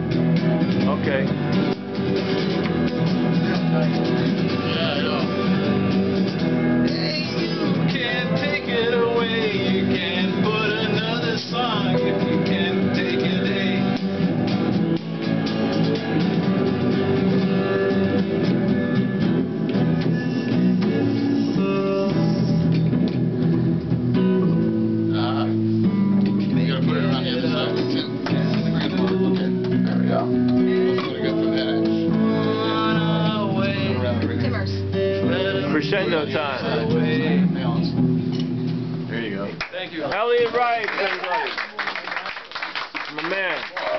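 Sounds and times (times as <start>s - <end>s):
electric guitar playing: 0.0s - 39.6s
man singing: 6.8s - 14.3s, 20.3s - 22.8s, 26.6s - 37.6s.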